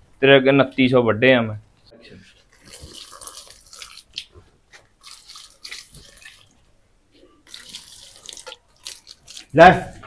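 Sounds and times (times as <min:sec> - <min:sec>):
water trickling onto plants: 0:02.4 - 0:06.7, 0:07.4 - 0:10.0.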